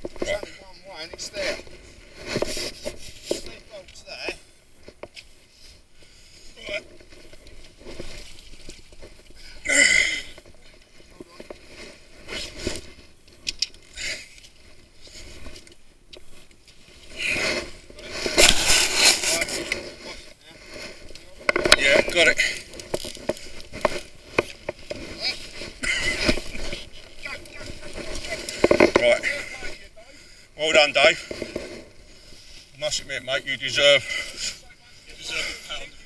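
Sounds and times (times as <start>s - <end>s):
camera scraping against tree bark: 0.0s - 9.6s, 10.3s - 36.0s.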